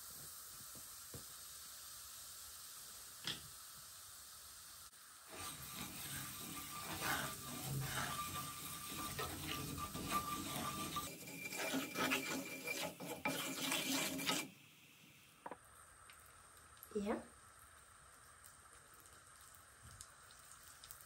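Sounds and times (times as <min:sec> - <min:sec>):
wooden spatula scraping frying pan: 0:05.3 - 0:14.6.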